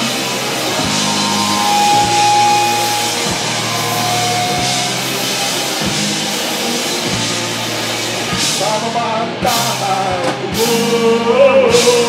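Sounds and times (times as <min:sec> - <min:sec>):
rock band playing: 0:00.4 - 0:09.8.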